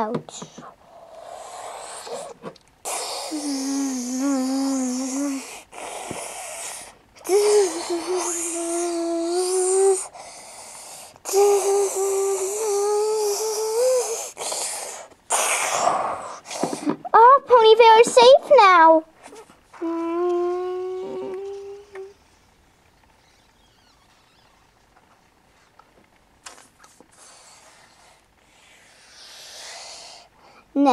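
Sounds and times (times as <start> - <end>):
hissy breath: 0.4 - 17.0, 27.0 - 30.7
child singing long held notes: 3.3 - 5.5, 7.2 - 10.2, 11.2 - 14.4, 19.8 - 22.2.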